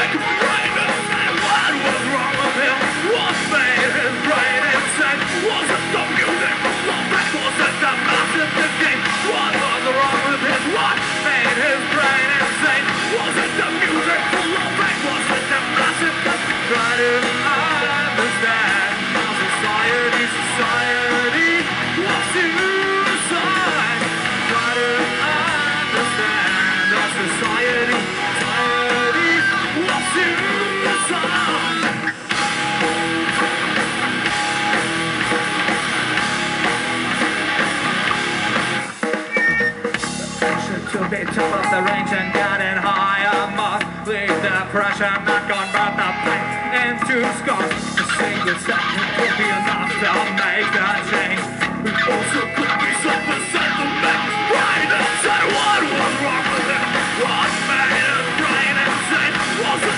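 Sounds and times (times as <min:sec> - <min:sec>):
live metal band playing: 0:00.0 - 0:59.9.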